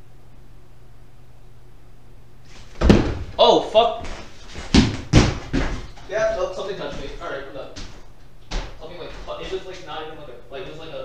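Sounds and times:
sharp thumps: 0:02.5 - 0:03.4.

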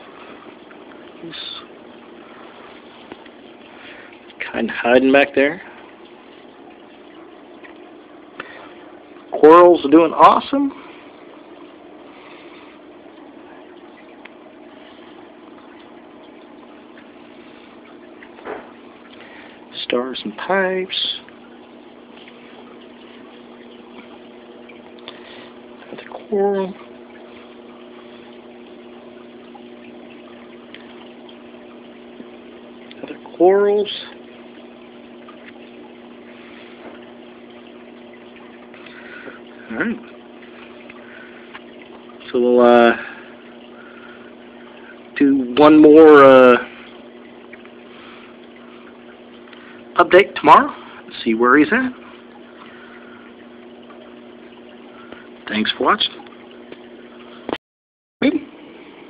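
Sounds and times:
aquarium pump humming: 0:00.0 - 0:57.6, 0:58.2 - 0:59.0
bubbling circulating water: 0:00.0 - 0:57.6, 0:58.2 - 0:59.0.

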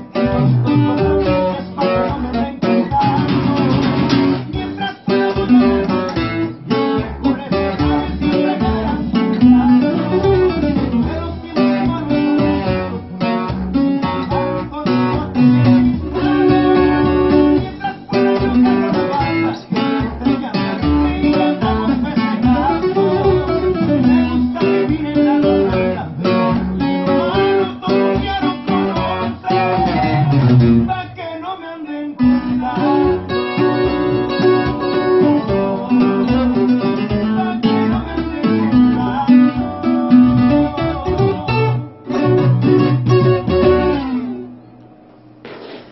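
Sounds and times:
twelve-string guitar playing: 0:00.0 - 0:31.2, 0:32.2 - 0:45.1.

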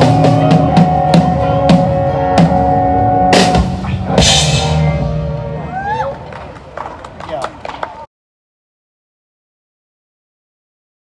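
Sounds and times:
rock band drum and cymbal hit: 0:00.0 - 0:05.4
scattered claps: 0:06.2 - 0:08.1.

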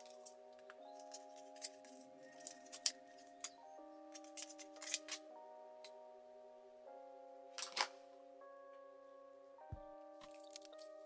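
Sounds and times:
quiet background music: 0:00.0 - 0:11.0
plastic packaging clicks and scrapes: 0:04.2 - 0:05.2.

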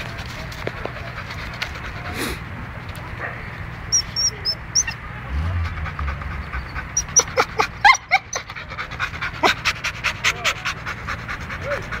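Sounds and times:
dog panting: 0:00.1 - 0:12.0.

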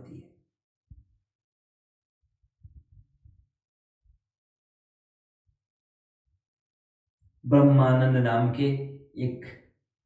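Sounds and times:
muffled low thumps and rumble: 0:02.6 - 0:03.5.

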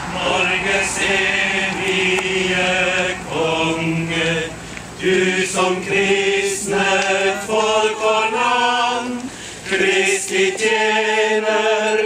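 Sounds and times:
people singing a hymn: 0:00.0 - 0:12.0.

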